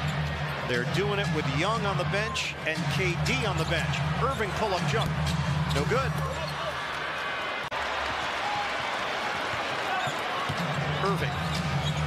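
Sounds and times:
sneakers squeaking on hardwood: 0:11.4 - 0:12.0.

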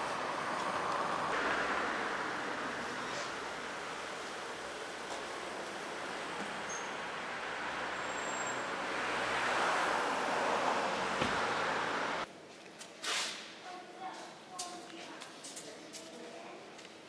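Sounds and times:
road vehicles hissing by: 0:00.0 - 0:12.3.

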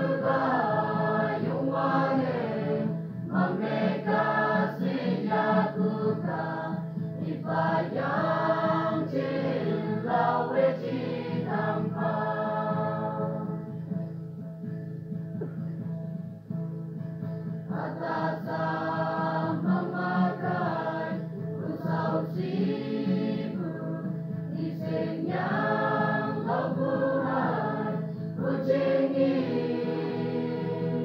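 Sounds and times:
choir singing a hymn: 0:00.0 - 0:13.7, 0:17.7 - 0:31.0.

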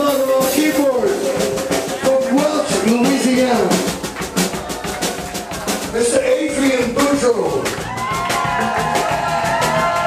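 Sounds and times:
drum kit steady beat: 0:00.0 - 0:10.0
electric bass: 0:00.0 - 0:10.0.

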